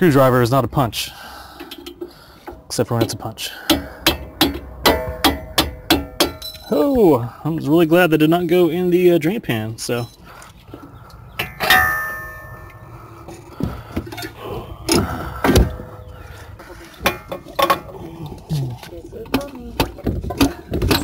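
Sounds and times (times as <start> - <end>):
sharp metallic clang: 3.7 - 6.7, 11.4 - 12.8
metal hand tools clinking: 6.0 - 6.7.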